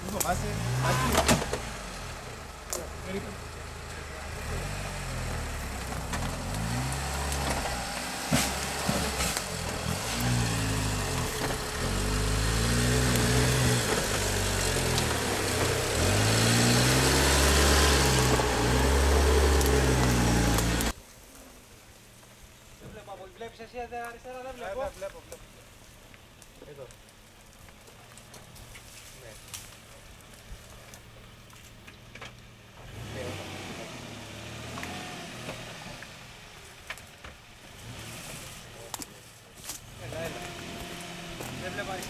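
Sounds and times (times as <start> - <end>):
off-road vehicle engine revving: 0.0 - 21.0, 32.6 - 37.0, 37.6 - 42.0.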